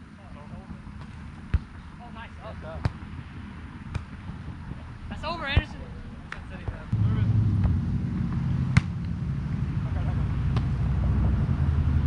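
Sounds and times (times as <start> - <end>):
volleyball being struck: 8.7 - 9.1.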